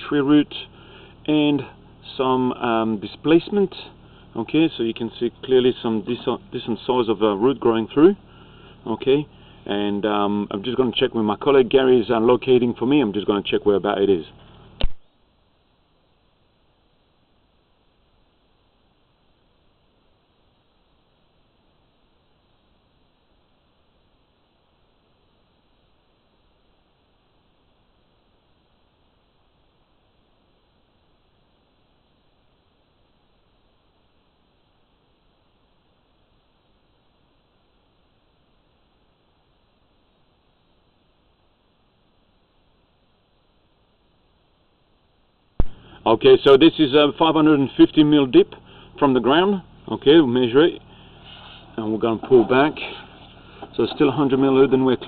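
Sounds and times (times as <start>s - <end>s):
faint steady hiss: 0.0s - 55.0s.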